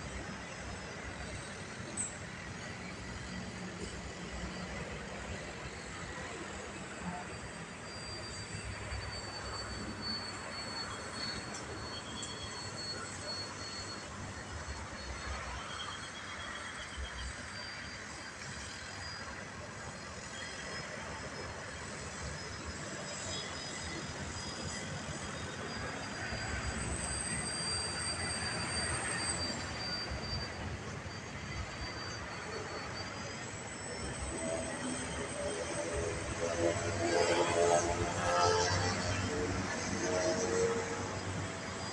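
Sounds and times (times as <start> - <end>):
model airplane motor whine: 0.2 - 41.9.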